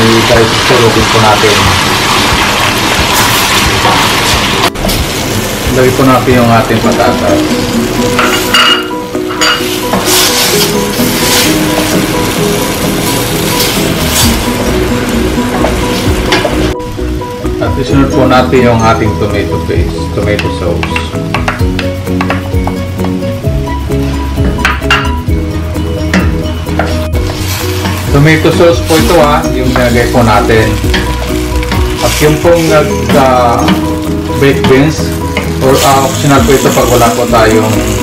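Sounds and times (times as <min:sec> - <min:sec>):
food sizzling in oil: 0:00.0 - 0:19.0, 0:20.8 - 0:38.0
background music: 0:00.0 - 0:38.0.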